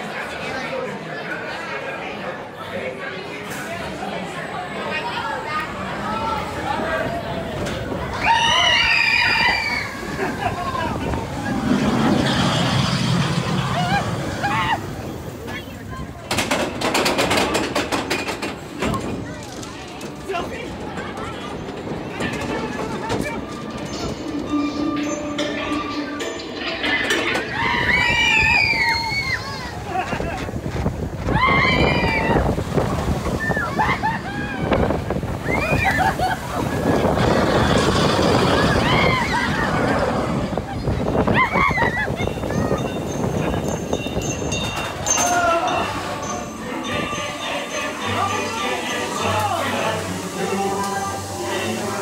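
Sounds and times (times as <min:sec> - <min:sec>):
roller coaster wheels rumbling: 0:00.0 - 0:52.0
excited rider voices: 0:05.7 - 0:16.2, 0:26.6 - 0:52.0.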